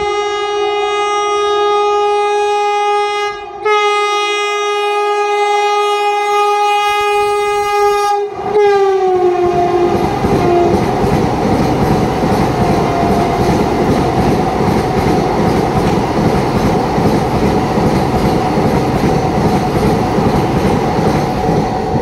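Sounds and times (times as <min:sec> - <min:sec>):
train horn blast: 0:00.0 - 0:10.9, 0:12.8 - 0:13.7
train coaches running past: 0:00.0 - 0:22.0.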